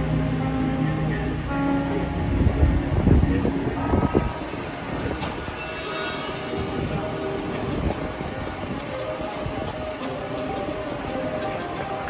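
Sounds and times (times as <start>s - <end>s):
marching band sustained chords: 0.0s - 12.0s.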